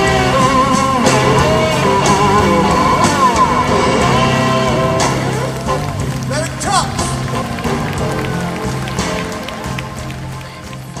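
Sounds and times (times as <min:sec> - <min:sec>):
electric slide guitar: 0:00.0 - 0:09.4
blues band playing: 0:00.0 - 0:11.0.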